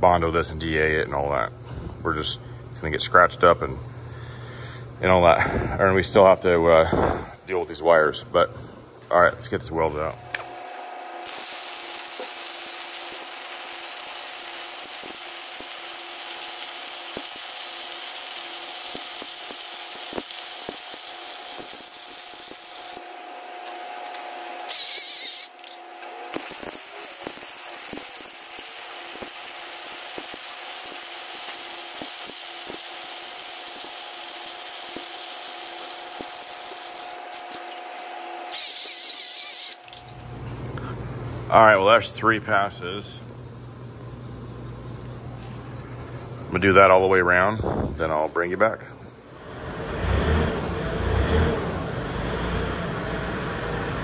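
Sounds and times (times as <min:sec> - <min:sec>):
welding arc crackling hiss: 0:09.8 - 0:42.2, 0:49.2 - 0:54.0.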